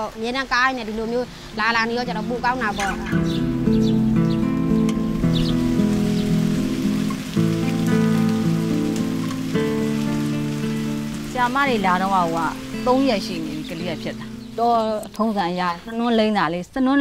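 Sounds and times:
rain dripping from eaves: 0.0 - 17.0
soft background music chords: 0.5 - 17.0.

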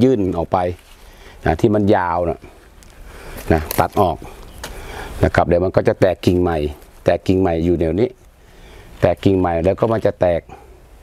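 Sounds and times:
man speaking: 0.0 - 0.8, 1.4 - 2.6, 3.4 - 4.4, 5.2 - 8.2, 9.0 - 10.7
faint background hiss: 0.0 - 11.0.

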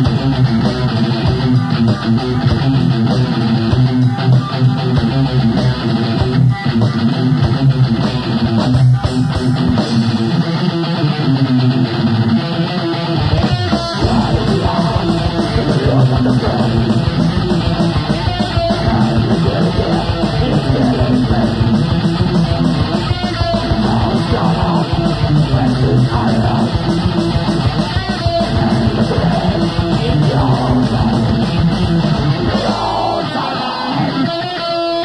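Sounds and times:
electric guitar riff: 0.0 - 35.0
live rock band playing: 0.0 - 35.0.

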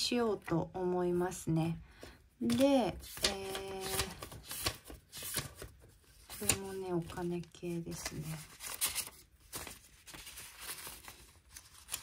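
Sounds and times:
paper pages rustling: 2.4 - 12.0.

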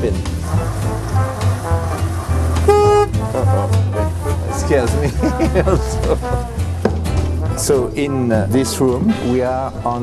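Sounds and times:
background music: 0.0 - 10.0
golf cart horn toot: 0.5 - 5.0.

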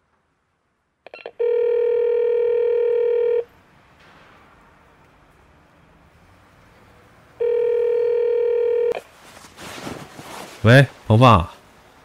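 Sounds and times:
telephone ringing tone: 1.1 - 3.5, 7.4 - 9.0.

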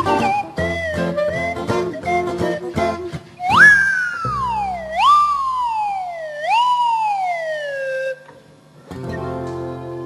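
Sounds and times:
clarinet melody sliding: 0.0 - 8.3.

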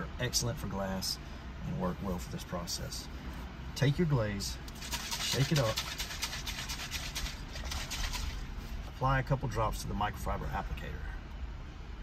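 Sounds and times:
bottle being shaken: 4.7 - 8.5.

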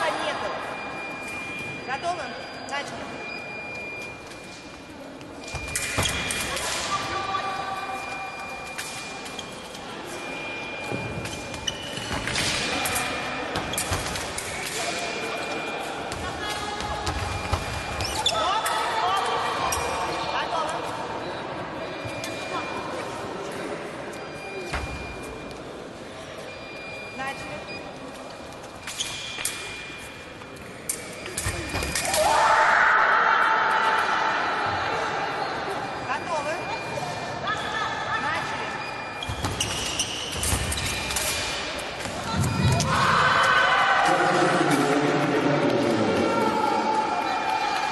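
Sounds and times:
shoe squeaks: 0.0 - 20.2, 26.5 - 32.2, 36.3 - 43.0.

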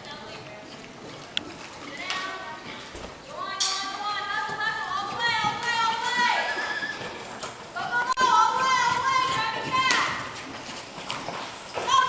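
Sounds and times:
horse hoofbeats on dirt: 0.0 - 12.0.

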